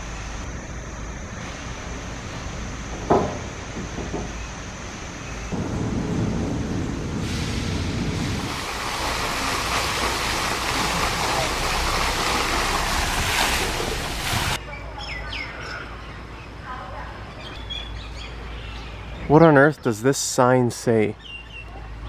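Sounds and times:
short knock: 3.0 - 4.4
low rumble: 5.4 - 14.6
running water rushing: 5.5 - 14.6.

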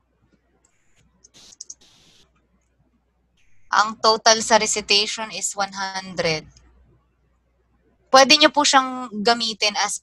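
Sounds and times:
short scratchy bursts: 0.9 - 2.2.

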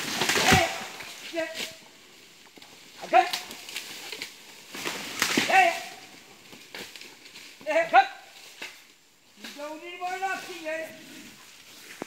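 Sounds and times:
man shouting a command: 0.4 - 1.7, 3.0 - 3.4, 5.4 - 6.0, 7.6 - 8.3.

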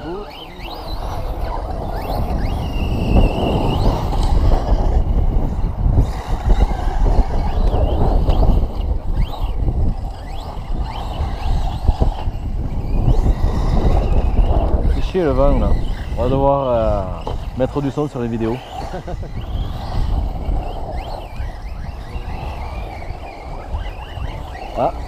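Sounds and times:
electric motors whining: 0.0 - 25.0
wind buffeting microphone: 0.0 - 25.0.

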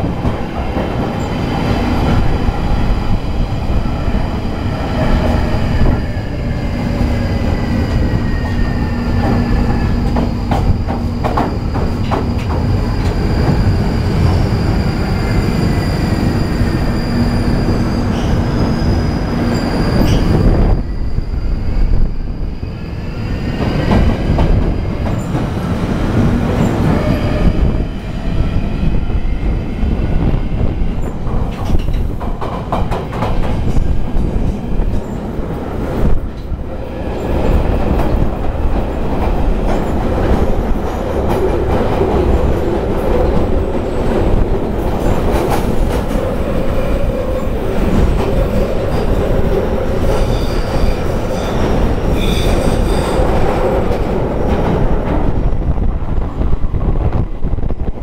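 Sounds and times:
train wheels rumbling on rail: 0.0 - 58.0
high wheel squeal: 13.2 - 21.8, 49.9 - 53.3.

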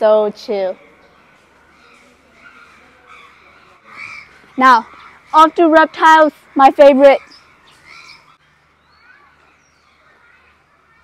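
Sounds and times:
faint bird chirps: 6.6 - 11.0.

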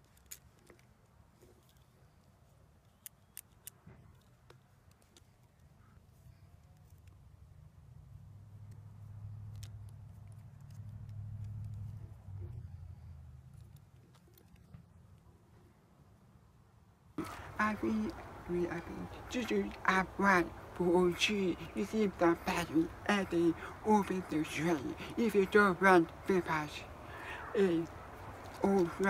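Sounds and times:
plastic connectors clicking: 2.8 - 5.7.

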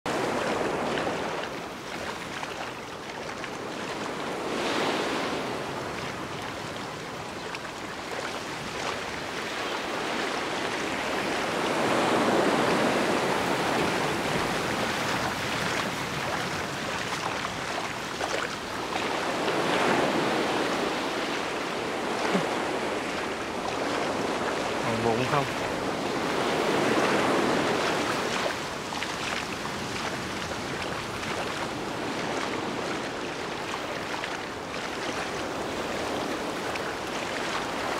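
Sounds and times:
ocean surf breaking: 0.1 - 2.9, 3.5 - 37.9.

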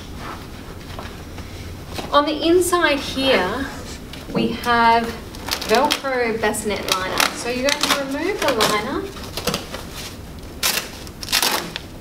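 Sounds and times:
velcro ripping apart: 6.9 - 12.0.

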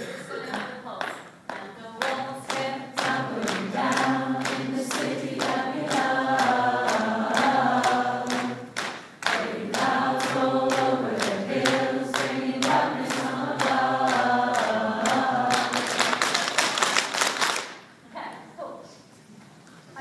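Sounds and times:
hand-struck beat: 1.1 - 16.2
group of people singing: 1.6 - 16.8.

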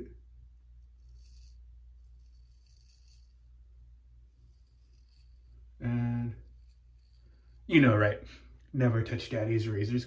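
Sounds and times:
razor scraping stubble: 0.8 - 3.6, 4.2 - 8.2.

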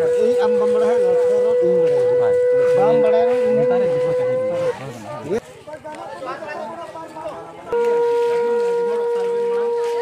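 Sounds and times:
loud steady tone: 0.0 - 4.9.

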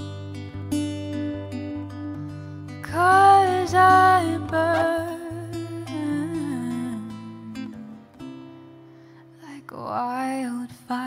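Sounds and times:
acoustic guitar: 0.0 - 11.0
woman singing long notes: 2.9 - 7.2.

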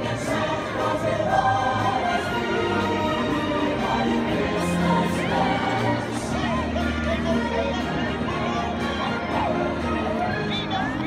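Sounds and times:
choir singing: 0.0 - 11.0
parade music over loudspeakers: 0.0 - 11.0.

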